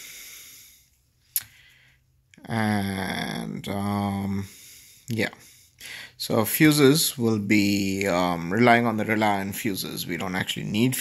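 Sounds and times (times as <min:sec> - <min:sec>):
faint hiss: 0:00.0 - 0:01.9.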